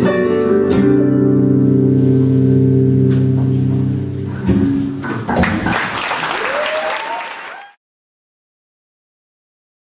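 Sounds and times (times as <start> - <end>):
audience applause: 5.4 - 7.8
audience whooping: 5.5 - 7.8.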